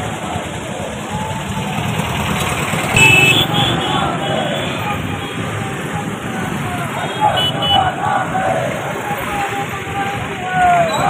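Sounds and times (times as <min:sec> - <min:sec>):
crowd voices: 0:00.0 - 0:11.0
road traffic: 0:00.0 - 0:11.0.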